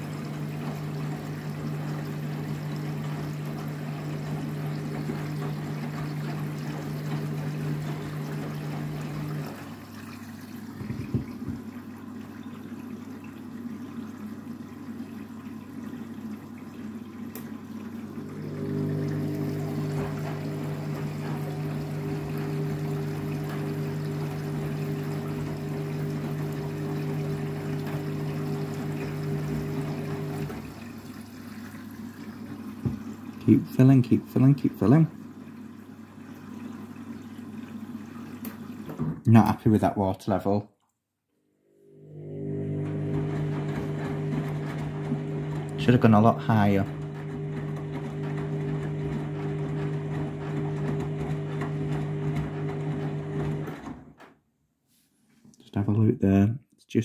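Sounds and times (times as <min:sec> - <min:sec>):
drum motor humming: 0:00.0 - 0:09.8, 0:18.0 - 0:31.0, 0:42.2 - 0:54.0
washing machine filling with water: 0:00.0 - 0:40.4, 0:41.7 - 0:54.4
knock: 0:10.8 - 0:11.7, 0:32.8 - 0:33.0.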